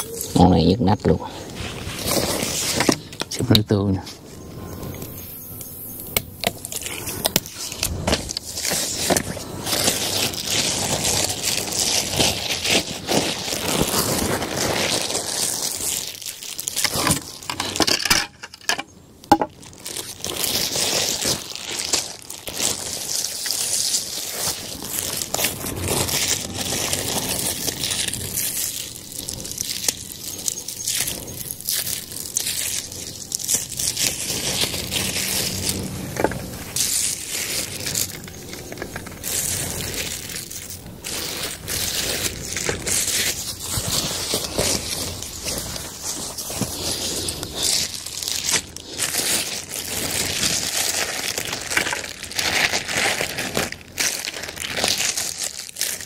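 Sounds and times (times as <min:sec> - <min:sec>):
plastic bags crinkling: 0:00.0 - 0:56.0.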